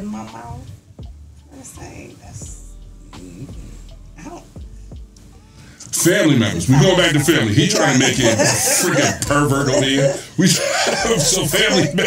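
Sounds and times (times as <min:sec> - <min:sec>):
stifled laughter: 0:06.7 - 0:12.0.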